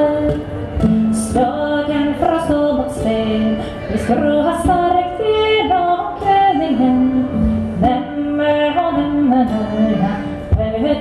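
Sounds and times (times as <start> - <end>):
string instruments: 0.0 - 11.0
woman singing slow melody: 0.0 - 11.0.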